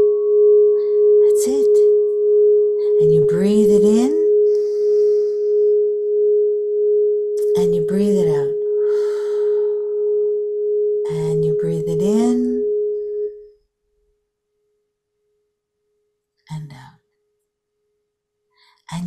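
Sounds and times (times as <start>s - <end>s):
crystal singing bowl tone: 0.0s - 13.7s
person speaking: 1.2s - 2.0s, 2.8s - 5.6s, 7.4s - 9.6s, 11.1s - 12.6s.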